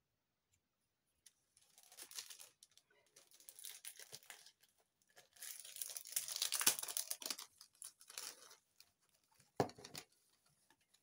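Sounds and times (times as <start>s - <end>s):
plastic packaging crinkling: 1.6s - 8.9s.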